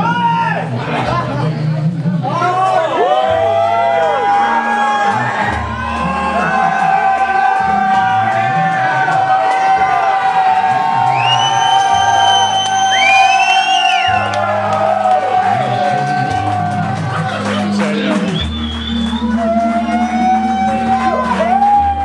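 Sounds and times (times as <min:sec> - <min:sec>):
crowd whooping and cheering: 0:02.4 - 0:22.0
rising whistles: 0:11.1 - 0:14.2, 0:18.3 - 0:19.5.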